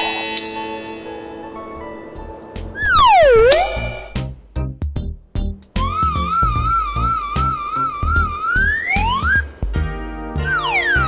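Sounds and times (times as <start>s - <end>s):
sparkling chime chord: 0.0s - 2.8s
music: 0.0s - 11.0s
whistle-like swoop: 2.8s - 4.3s, 5.8s - 9.5s, 10.4s - 11.0s.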